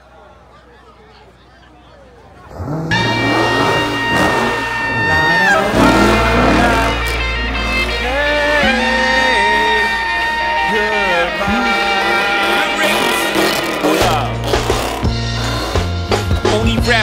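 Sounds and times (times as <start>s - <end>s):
car engine rumble: 0.0s - 17.0s
tyres squealing: 2.5s - 16.6s.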